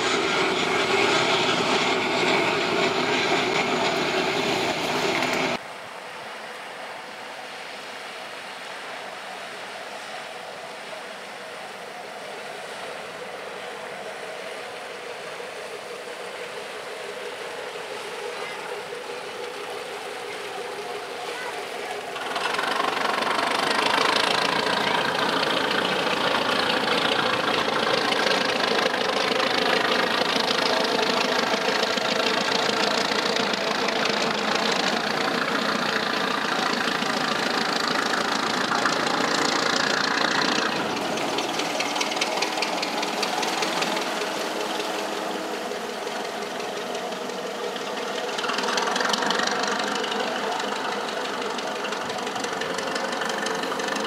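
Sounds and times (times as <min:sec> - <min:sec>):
engine running with even hum: 0:00.0 - 0:05.6, 0:09.5 - 0:54.0.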